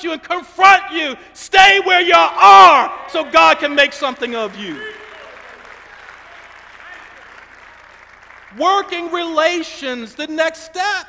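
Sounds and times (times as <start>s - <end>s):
congregation applauding: 3.1s - 10.0s.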